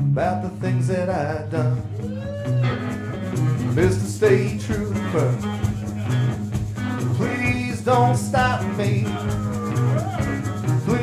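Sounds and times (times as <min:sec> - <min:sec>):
drums: 0:00.0 - 0:11.0
electric guitars playing riff: 0:00.0 - 0:11.0.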